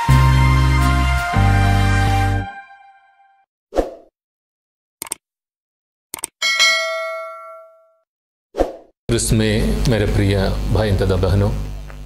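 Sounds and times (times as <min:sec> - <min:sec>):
clicks: 0:06.1 - 0:06.4
bright bell ding: 0:06.4 - 0:08.0.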